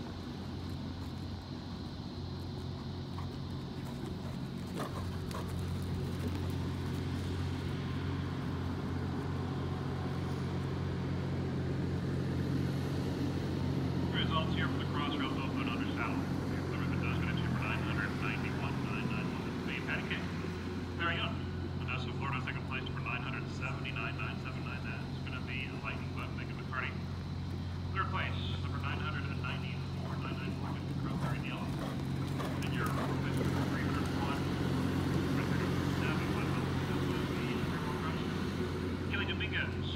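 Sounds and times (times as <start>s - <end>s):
low mechanical hum: 0.0s - 39.9s.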